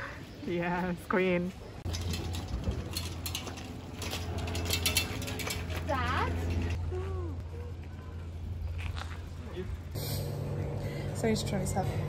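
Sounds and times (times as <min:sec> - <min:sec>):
steady low hum: 0:01.8 - 0:12.0.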